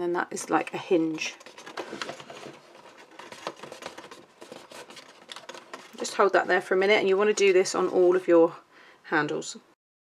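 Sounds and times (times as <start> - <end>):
cardstock rustling and tapping: 0.5 - 8.0.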